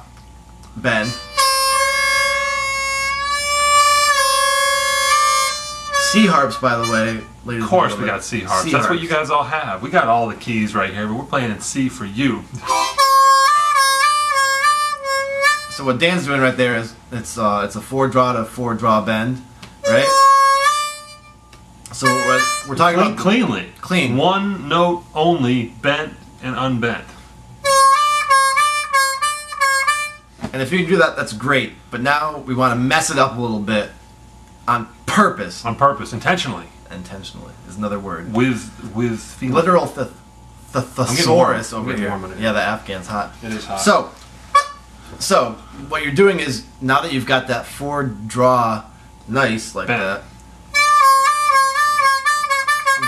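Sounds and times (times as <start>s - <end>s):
harmonica note bending: 0.6s - 9.0s, 12.6s - 16.6s, 19.8s - 23.3s, 27.6s - 30.3s, 41.0s - 41.6s, 44.5s - 45.0s, 50.7s - 53.0s.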